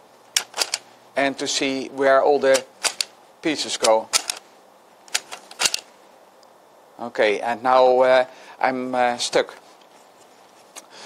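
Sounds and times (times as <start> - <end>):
plastic tokens clicking into place: 0.4 - 0.8, 2.5 - 3.1, 3.8 - 4.4, 5.1 - 5.9.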